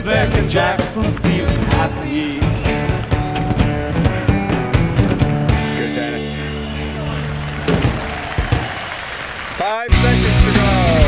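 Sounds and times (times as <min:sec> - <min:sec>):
rock music with drums and guitar: 0:00.0 - 0:08.7, 0:09.9 - 0:11.0
heavier rock track: 0:00.0 - 0:11.0.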